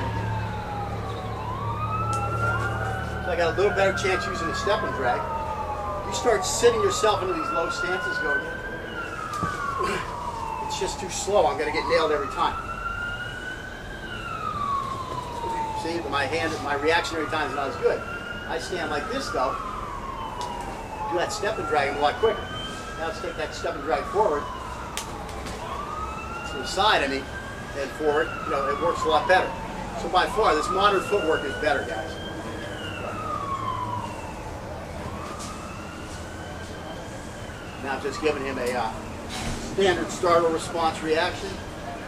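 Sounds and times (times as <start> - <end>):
emergency vehicle siren wailing: 0.0 - 42.0.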